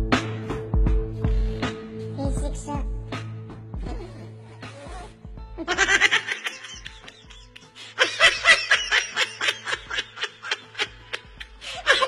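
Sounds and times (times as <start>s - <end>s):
background music with low beat: 0.0s - 12.0s
laughter in quick bursts: 5.6s - 12.0s.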